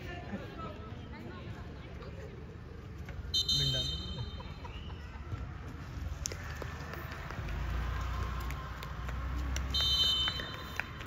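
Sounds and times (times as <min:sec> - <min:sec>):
referee's whistle: 0:03.4 - 0:04.2.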